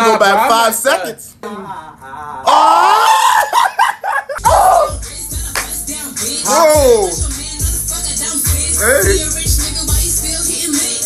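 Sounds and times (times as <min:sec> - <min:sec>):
young men screaming with laughter: 0:02.4 - 0:05.0.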